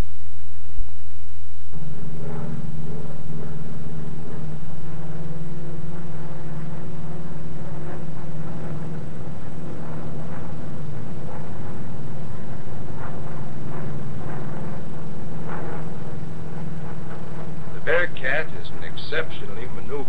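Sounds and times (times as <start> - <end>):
propeller plane engine drone: 0.0 - 20.0.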